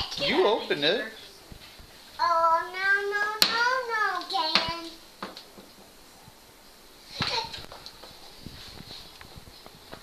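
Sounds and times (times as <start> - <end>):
child's sung vocal call: 2.2 - 5.0.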